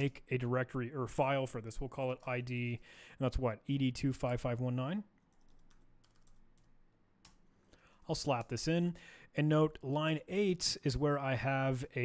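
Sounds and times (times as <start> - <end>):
keyboard typing: 5.2 - 7.5.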